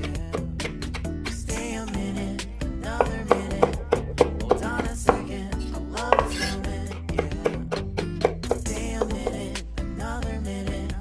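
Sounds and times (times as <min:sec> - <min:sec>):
knife chopping on wooden board: 0:00.0 - 0:02.2, 0:02.9 - 0:05.4, 0:06.0 - 0:09.5
song with steady beat: 0:00.0 - 0:11.0.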